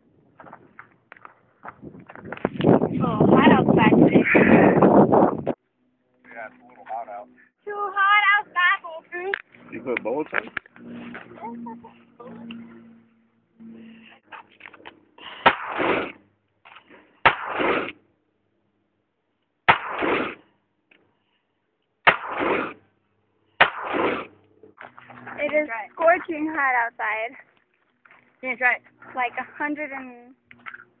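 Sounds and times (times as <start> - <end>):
handgun shots with echo: 17.2 - 18.0, 19.7 - 20.3, 22.1 - 22.8, 23.6 - 24.3.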